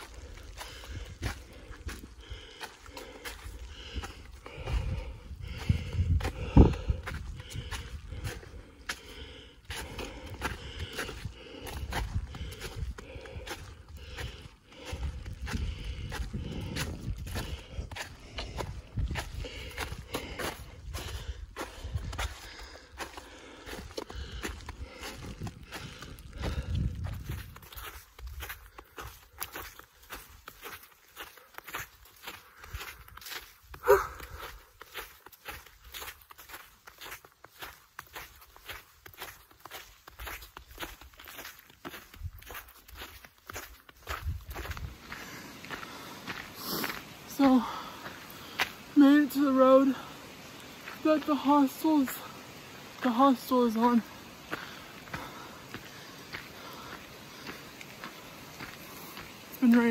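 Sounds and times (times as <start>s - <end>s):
footsteps on snow: 0.0s - 59.9s
gusty low rumble: 3.8s - 8.8s, 10.6s - 22.4s, 24.2s - 28.4s.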